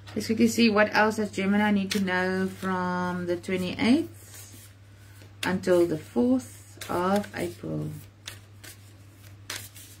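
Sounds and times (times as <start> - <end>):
low steady hum: 0.0 - 10.0
cards rustling when shuffled: 6.8 - 10.0.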